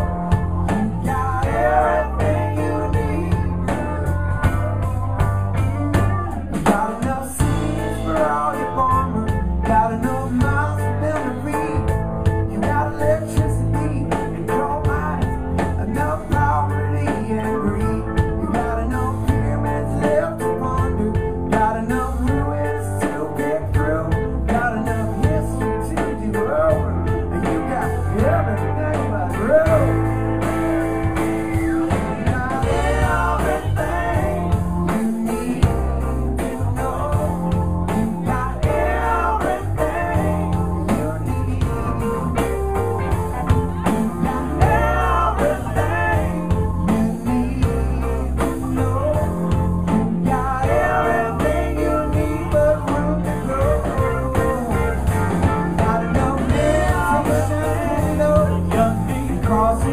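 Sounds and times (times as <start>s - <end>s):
live rock band playing: 0.0s - 59.9s.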